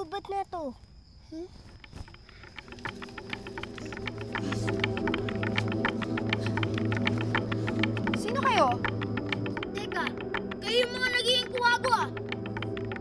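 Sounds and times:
fast clicking percussion: 1.7 - 13.0
low drone chord: 2.8 - 13.0.

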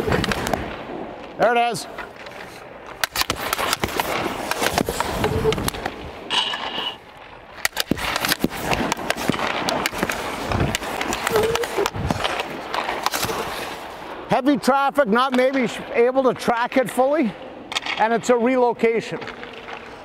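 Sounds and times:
puck striking goalie pads: 0.0 - 6.7, 7.6 - 13.8, 17.7 - 18.2
skates scraping on ice: 0.0 - 14.4, 17.8 - 20.0
stick clacking on puck: 2.0 - 7.0, 7.6 - 13.8, 17.7 - 18.1.

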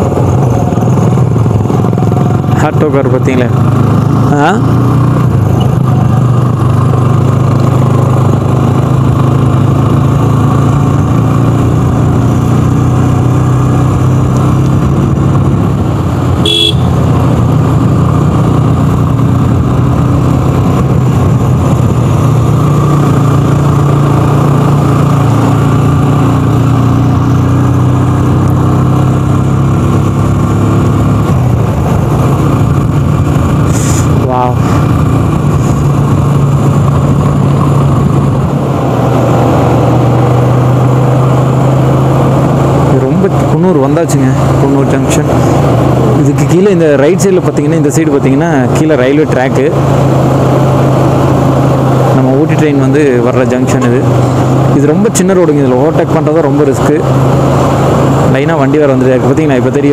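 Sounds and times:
motorcycle engine running: 0.0 - 59.9
wind and road noise: 0.0 - 59.9
motorcycle horn toots: 16.4 - 17.1.

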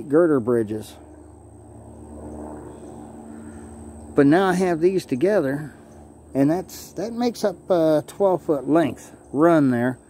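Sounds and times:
engine drone: 0.0 - 10.0.

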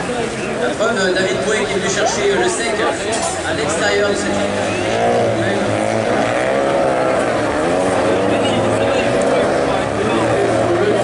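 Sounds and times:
racing car engines revving: 0.0 - 11.0.

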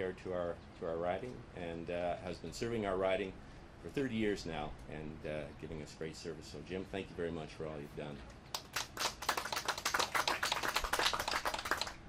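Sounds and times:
group applauding: 8.5 - 12.0.

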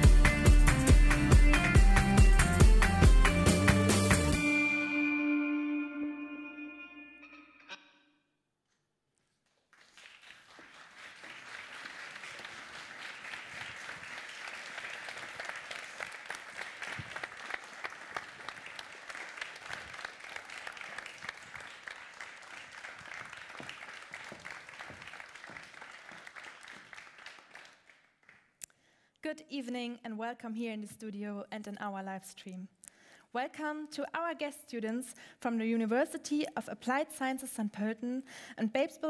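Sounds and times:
audience applauding: 9.6 - 28.5.

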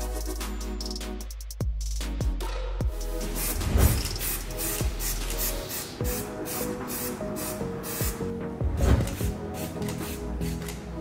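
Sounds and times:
background music: 0.0 - 11.0
aerosol spray hisses: 3.3 - 8.3.

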